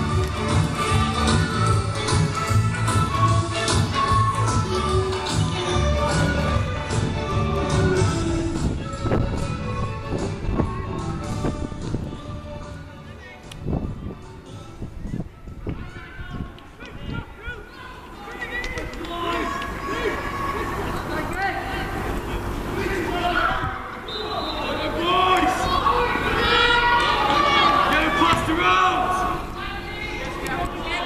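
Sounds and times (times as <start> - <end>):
crowd shouting: 15.8 - 31.0.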